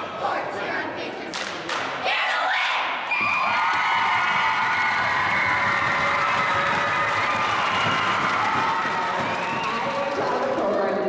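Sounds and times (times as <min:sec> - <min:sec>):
crowd cheering and screaming: 0:03.1 - 0:10.4
applause: 0:03.4 - 0:11.0.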